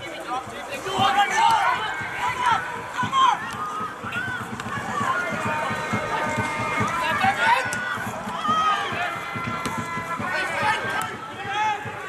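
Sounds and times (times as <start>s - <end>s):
players and spectators shouting: 0.0s - 12.0s.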